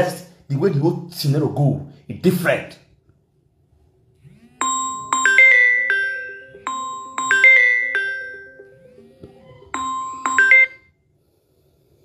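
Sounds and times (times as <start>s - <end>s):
electronic phone chime: 4.6s - 9.0s, 9.7s - 11.0s.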